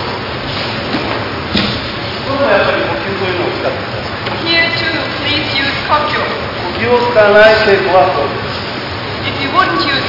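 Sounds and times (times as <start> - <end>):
man speaking: 2.3 - 3.9, 4.7 - 8.5.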